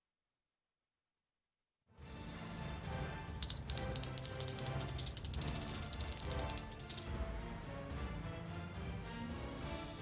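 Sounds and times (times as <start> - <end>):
music: 1.9 - 10.0
coins clinking onto a pile: 3.4 - 7.1.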